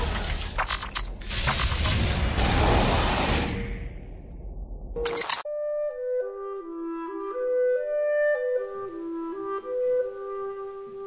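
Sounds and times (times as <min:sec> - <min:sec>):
sharp mechanical clicks: 0:00.0 - 0:02.4, 0:05.0 - 0:05.5.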